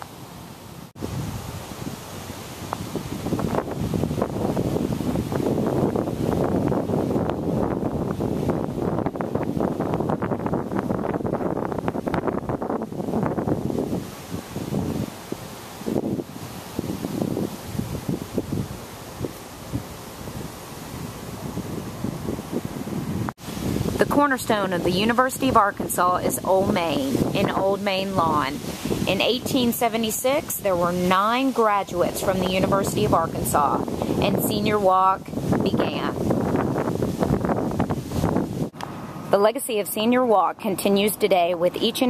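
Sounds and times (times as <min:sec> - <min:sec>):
wind gusting on microphone: 0:00.0 - 0:42.0.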